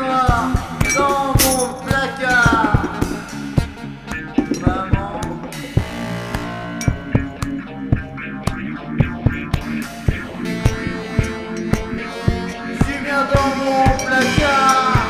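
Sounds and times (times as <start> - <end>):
rock band playing: 0.3 - 15.0.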